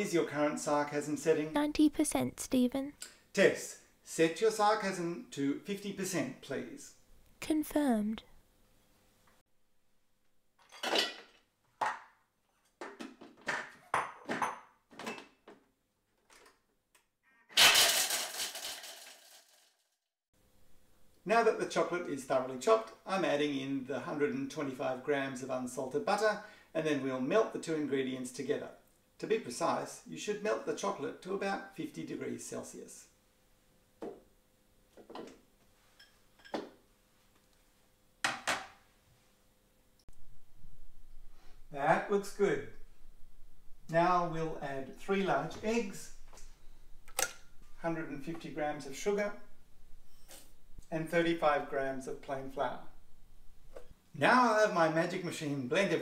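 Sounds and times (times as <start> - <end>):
kitchenware clinks and knocks: 10.6 - 11.5, 12.8 - 15.3, 36.0 - 36.8
chocolate pieces clattering into steel bowl: 17.6 - 19.7.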